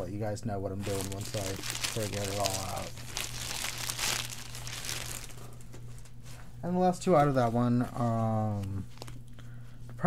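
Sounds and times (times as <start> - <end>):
faint low hum: 0.0 - 10.0
plastic bag crinkling: 0.8 - 6.0, 8.6 - 9.2.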